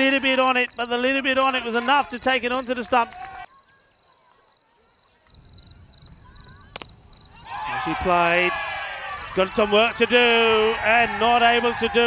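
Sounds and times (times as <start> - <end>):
insects chirring: 0.0 - 10.6.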